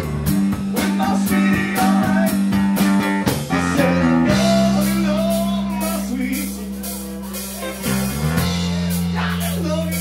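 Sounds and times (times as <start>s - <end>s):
blues band playing: 0.0s - 10.0s
drums: 0.0s - 10.0s
electric guitar: 0.0s - 10.0s.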